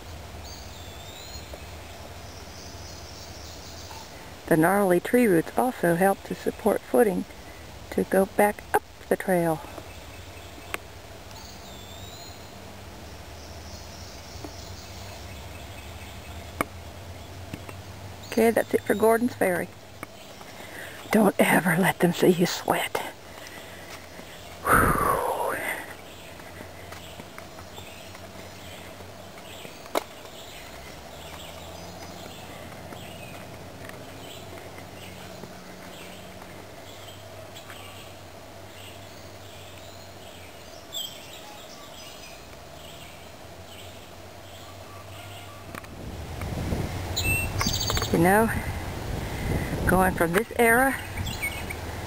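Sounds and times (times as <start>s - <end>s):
footsteps on dirt trail: 23.1s - 24.7s, 25.8s - 37.9s
bird whistling call: 47.2s - 48.1s.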